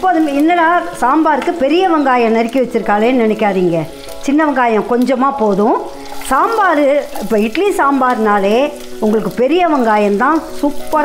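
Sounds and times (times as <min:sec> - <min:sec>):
oil sizzling in a pan: 0:00.0 - 0:11.0
woman talking: 0:00.0 - 0:11.0.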